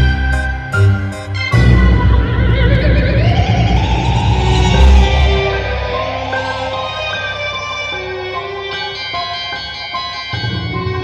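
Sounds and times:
low music drone: 0:00.0 - 0:09.4
wavering rising cry: 0:01.8 - 0:09.0.

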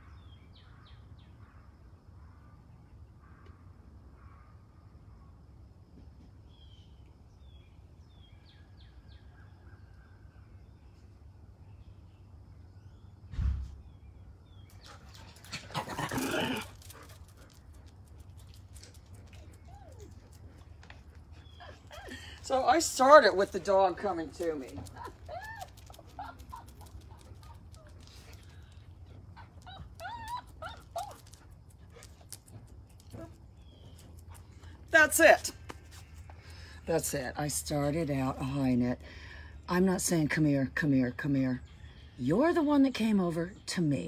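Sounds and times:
short low thump: 0:13.3 - 0:13.9.

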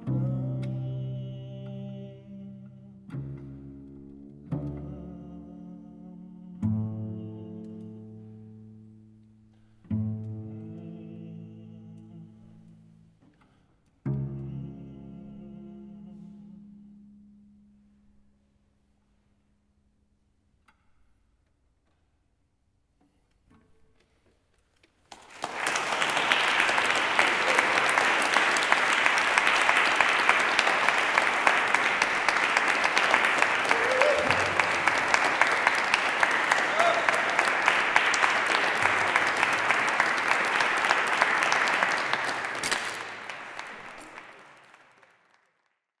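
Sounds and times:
audience applauding: 0:25.1 - 0:45.8.

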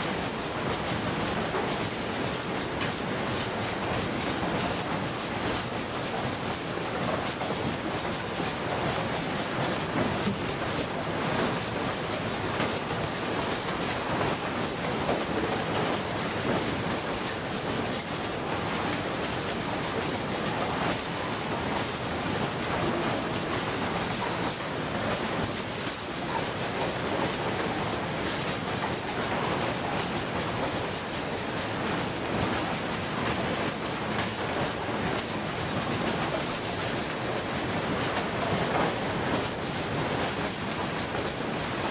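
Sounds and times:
conveyor machinery clattering: 0:00.0 - 0:41.9.

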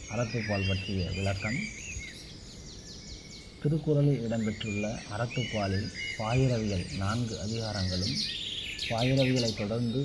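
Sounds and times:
man's voice: 0:00.0 - 0:01.7, 0:03.6 - 0:08.3, 0:08.9 - 0:10.0
small birds chirping: 0:00.0 - 0:10.0.

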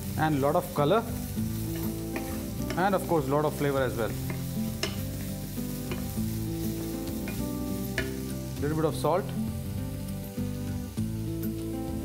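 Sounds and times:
background music sustained notes: 0:00.0 - 0:12.0
vegetables sizzling in oil: 0:00.0 - 0:12.0.

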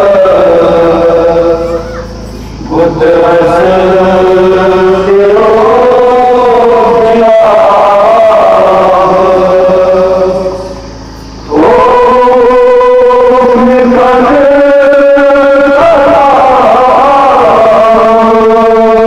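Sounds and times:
man chanting a lament: 0:00.0 - 0:10.9, 0:11.5 - 0:19.0.

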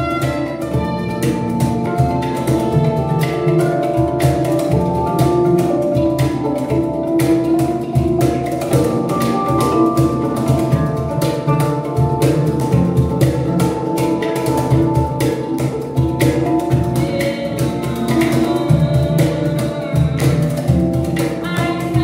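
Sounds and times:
violin held notes: 0:00.0 - 0:03.8
handpans playing: 0:00.0 - 0:22.0.

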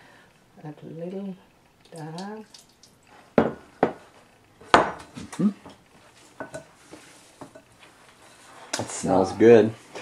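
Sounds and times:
ceramic bowl knocking on countertop: 0:03.4 - 0:04.0, 0:04.7 - 0:05.0.

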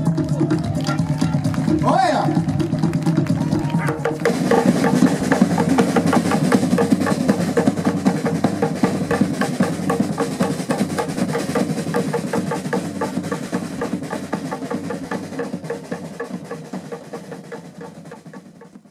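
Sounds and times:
fast drumming: 0:00.0 - 0:18.9.

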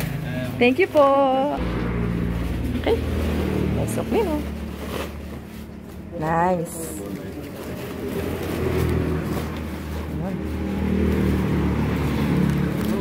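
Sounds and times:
vehicle engine humming: 0:00.0 - 0:13.0.

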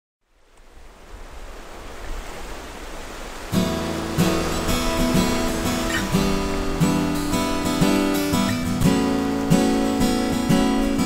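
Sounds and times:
surf washing on beach: 0:00.2 - 0:11.0
acoustic guitar strumming: 0:03.5 - 0:11.0.

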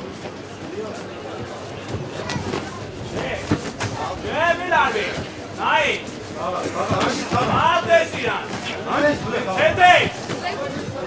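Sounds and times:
voices calling out in a hall: 0:00.0 - 0:11.0.

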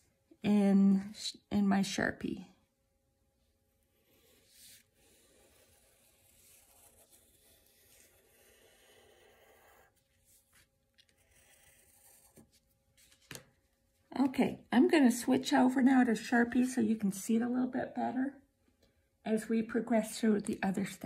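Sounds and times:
pencil scratching on paper: 0:03.7 - 0:12.8.

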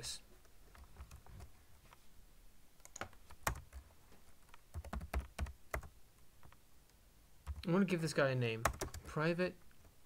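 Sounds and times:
typing on computer keyboard: 0:04.7 - 0:05.9, 0:08.6 - 0:09.1.

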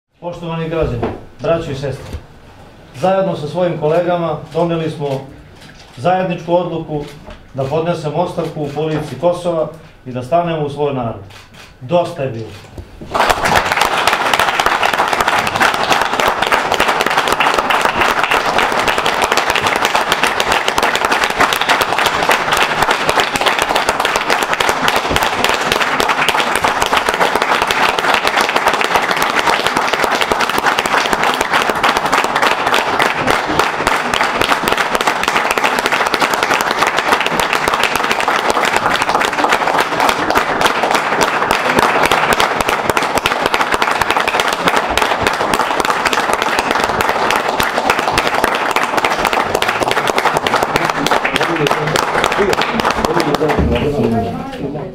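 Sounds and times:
people applauding: 0:13.1 - 0:54.2.

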